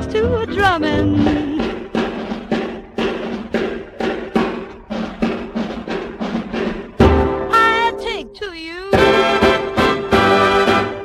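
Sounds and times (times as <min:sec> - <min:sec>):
drum strokes: 0:00.0 - 0:11.0.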